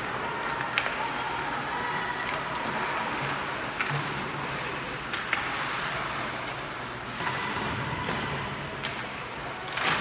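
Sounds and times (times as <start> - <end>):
skates scraping ice: 0.0 - 10.0.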